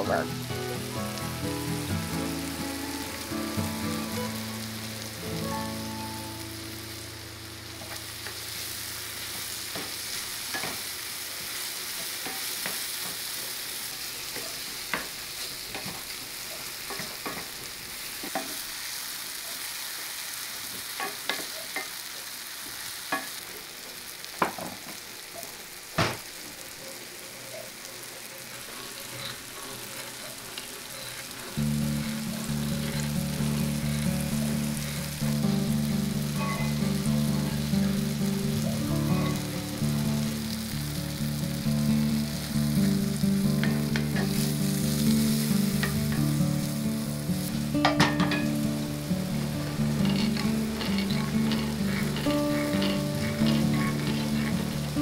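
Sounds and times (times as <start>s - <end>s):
soft background music: 0.0s - 9.6s, 31.2s - 55.0s
apple slices sizzling in butter: 0.0s - 55.0s
wooden spoon stirring: 49.6s - 55.0s.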